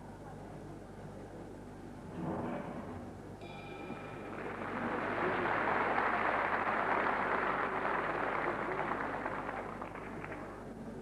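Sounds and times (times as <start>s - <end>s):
audience applauding: 4.3s - 10.7s.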